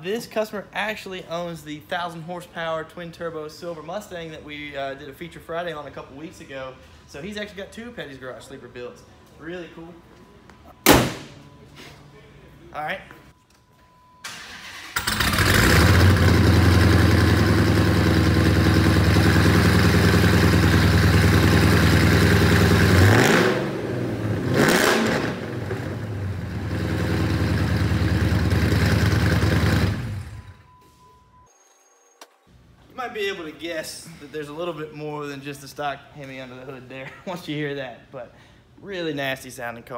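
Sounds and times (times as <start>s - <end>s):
car engine starting: 14.2s - 30.7s
car engine revving: 15.0s - 30.4s
car engine rumbling idle: 15.8s - 22.9s, 26.0s - 30.4s.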